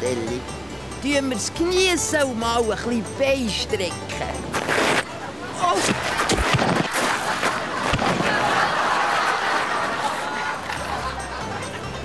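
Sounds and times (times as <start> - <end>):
scraping on gravel: 5.8 - 8.4.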